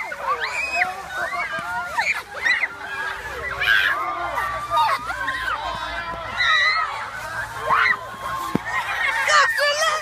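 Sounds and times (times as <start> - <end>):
children shrieking with laughter: 0.0 - 10.0.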